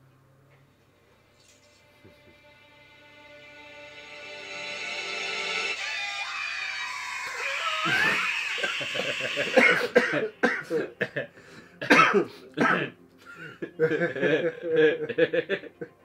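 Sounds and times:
trailer music with held tones: 0:00.8 - 0:16.0
high yelling voice: 0:05.8 - 0:09.5
men laughing: 0:07.6 - 0:11.3, 0:13.2 - 0:16.0.

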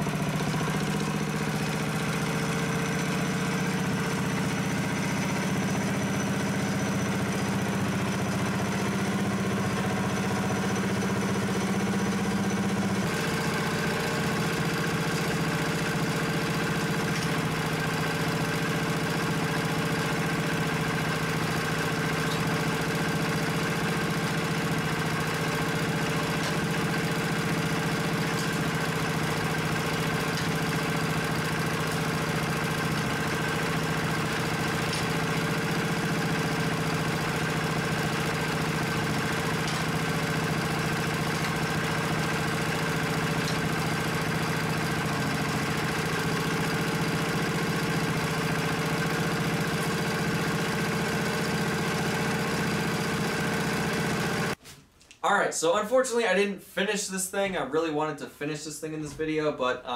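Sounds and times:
small engine running steadily: 0:00.0 - 0:54.6.

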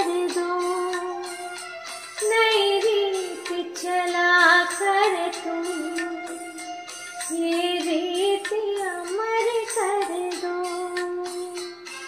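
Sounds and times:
woman singing: 0:00.0 - 0:01.6, 0:02.2 - 0:11.8
karaoke backing track: 0:00.0 - 0:12.0.

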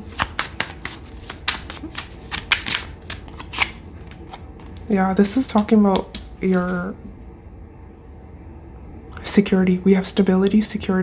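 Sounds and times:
cards being shuffled: 0:00.0 - 0:04.9, 0:05.9 - 0:06.9.

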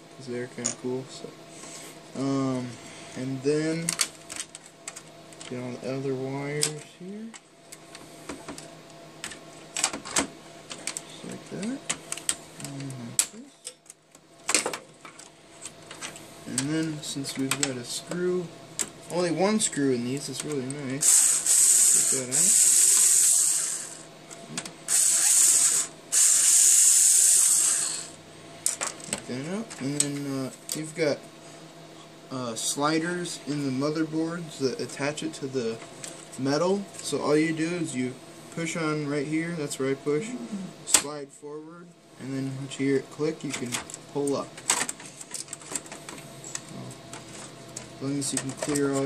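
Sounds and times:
electric screwdriver whine: 0:21.0 - 0:24.1, 0:24.9 - 0:28.2.

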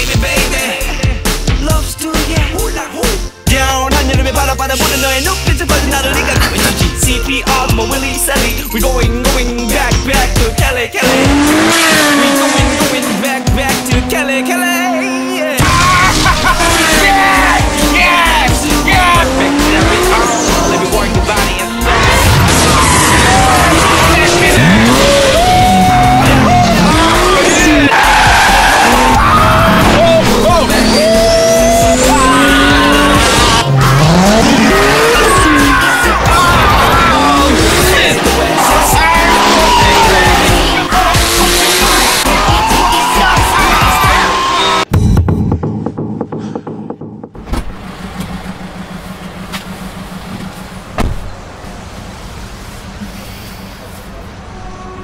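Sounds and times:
music playing: 0:00.0 - 0:47.3
car tyres screeching: 0:10.2 - 0:44.9, 0:47.4 - 0:55.0
thump: 0:46.3 - 0:47.8, 0:51.0 - 0:51.3.

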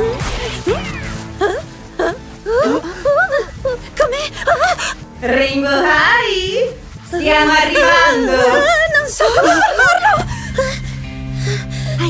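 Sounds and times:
background music held tone: 0:00.0 - 0:12.0
wavering high vocal: 0:00.8 - 0:10.2.

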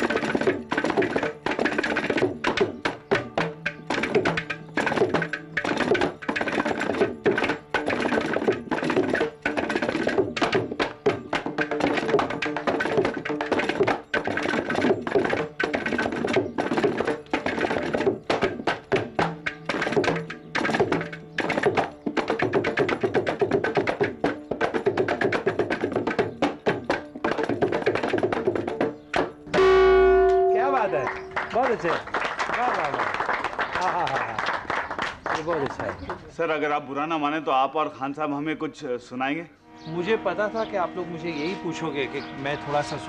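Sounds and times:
frame drum and clay pot slaps: 0:00.0 - 0:32.0
tuned drum strokes ringing: 0:00.0 - 0:32.0
percussion ensemble fast rhythm: 0:00.0 - 0:37.5.

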